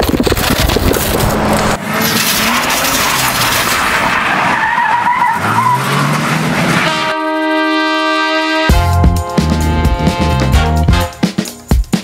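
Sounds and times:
tyres skidding: 0.3 - 7.2
car engine revving: 0.7 - 7.1.

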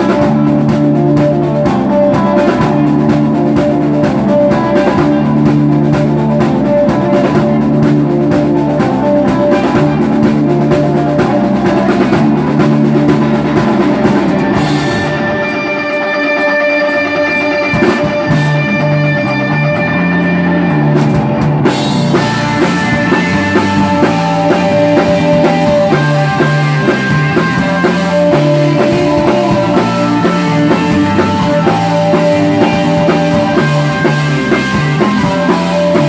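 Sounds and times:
rock band playing live: 0.0 - 36.0.

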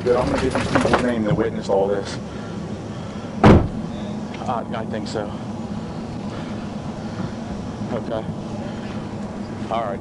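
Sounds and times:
low steady hum: 0.0 - 10.0
sudden thump: 3.4 - 3.8.

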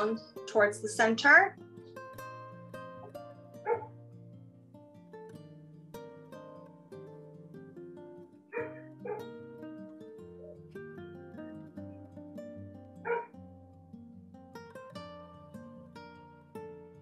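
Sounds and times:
plucked guitar music: 0.0 - 17.0.

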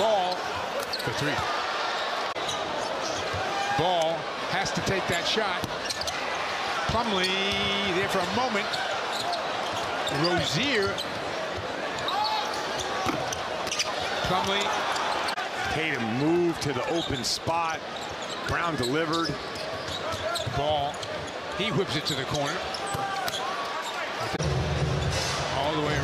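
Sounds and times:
sneaker squeaks on hardwood: 12.0 - 14.1, 19.2 - 21.4.

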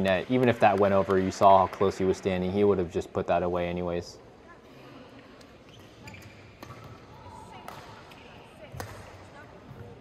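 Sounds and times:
court shoes squeaking: 5.1 - 10.0
racket striking shuttlecock: 7.6 - 9.2.

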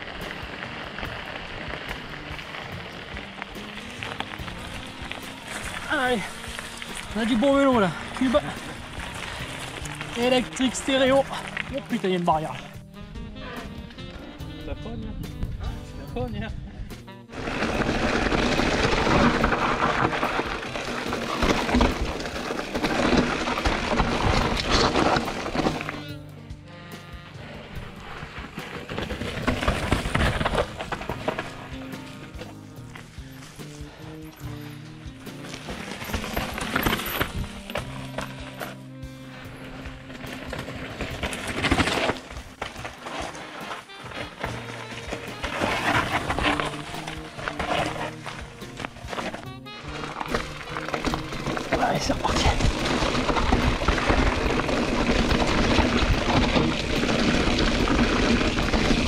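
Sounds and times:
background music with bass line: 0.0 - 59.0.

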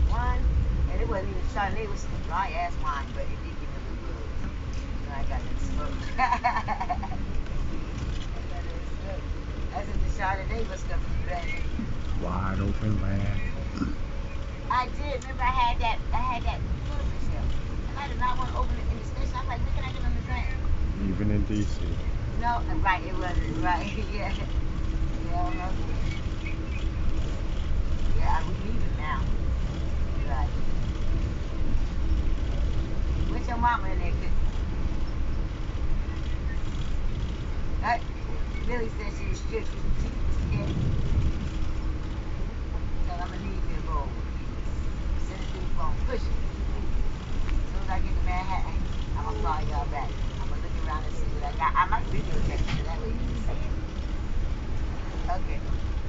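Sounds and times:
train rumbling inside coach: 0.0 - 56.0
people talking: 0.1 - 3.7, 8.4 - 13.5, 14.7 - 24.5, 25.3 - 26.9, 28.2 - 29.3, 30.2 - 30.5, 33.3 - 34.4, 37.8 - 40.8, 43.0 - 44.2, 45.2 - 46.4, 47.7 - 53.8, 55.2 - 55.7.

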